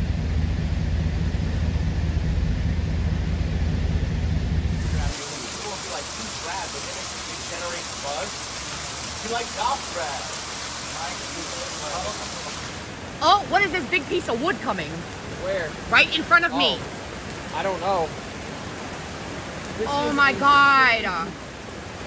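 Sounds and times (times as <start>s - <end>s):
heavy rain on a street: 4.8s - 22.0s
rushing flooded river: 4.8s - 22.0s.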